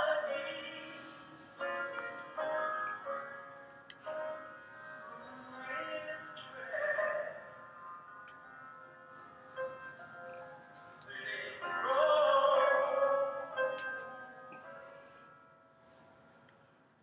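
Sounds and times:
person singing: 0.0 - 4.3, 5.0 - 7.6, 11.0 - 14.3.

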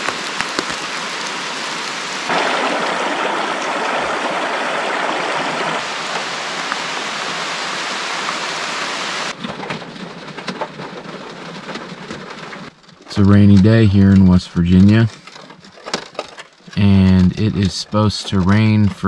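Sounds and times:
raindrops tapping on car roof: 0.0 - 1.3, 9.3 - 19.0
heavy rain on trees and car: 0.0 - 15.1.

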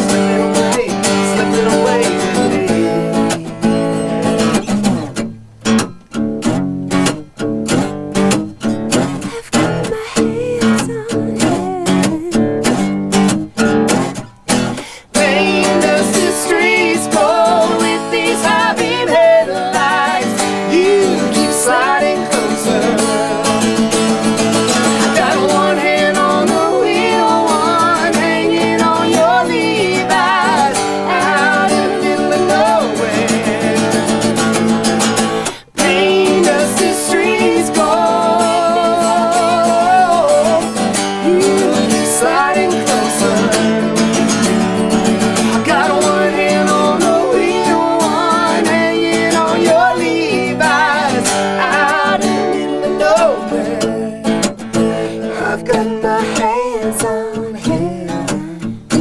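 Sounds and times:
person singing: 0.0 - 4.8, 9.1 - 12.8, 14.8 - 59.0
acoustic guitar strumming: 0.0 - 59.0.

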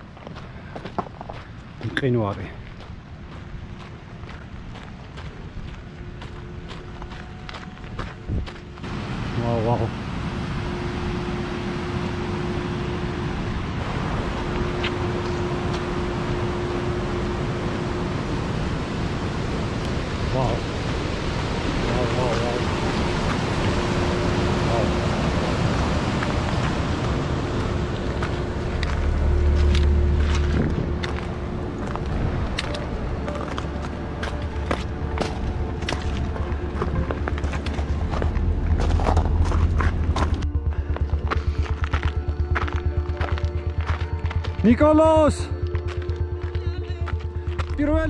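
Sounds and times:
footsteps on stony ground: 0.0 - 8.9, 26.2 - 48.0
wind buffeting microphone: 2.7 - 9.3, 10.0 - 44.5.

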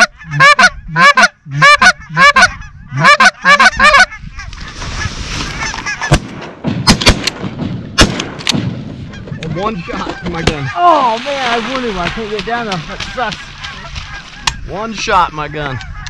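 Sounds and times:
geese honking: 0.0 - 6.2, 9.0 - 16.0
rustle: 4.4 - 6.1, 10.0 - 15.0
shotgun shots: 6.0 - 9.0.

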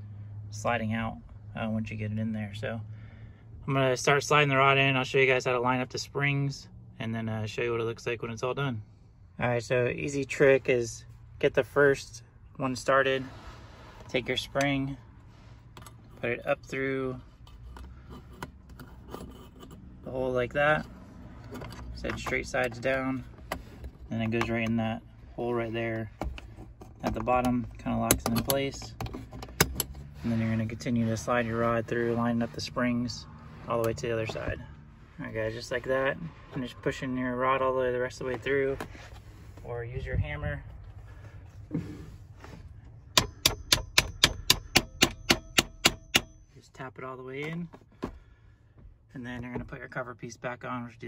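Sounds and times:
hammer tapping metal rod: 43.2 - 46.4.

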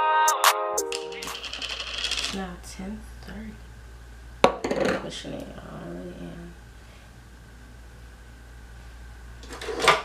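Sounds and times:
steady low hum: 0.9 - 9.6
clinking rattle: 1.2 - 2.4.

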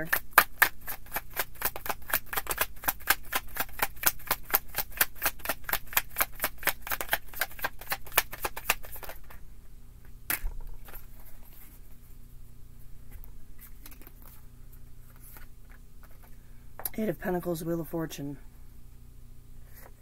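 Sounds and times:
cards being shuffled: 0.0 - 9.4, 10.3 - 11.9, 13.2 - 14.4, 15.0 - 16.4
sharp snap of cards: 1.4 - 9.2.

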